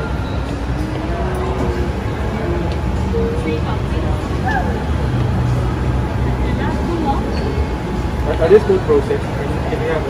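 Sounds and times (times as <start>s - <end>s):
faint indistinct voices: 0.0s - 10.0s
steady low hum: 0.0s - 10.0s.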